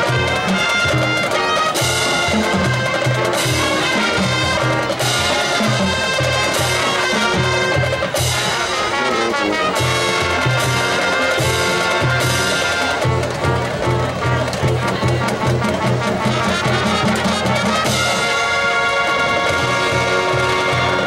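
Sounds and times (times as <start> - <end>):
brass section: 0.0 - 21.0
drumline: 0.0 - 21.0
marching band playing: 0.0 - 21.0.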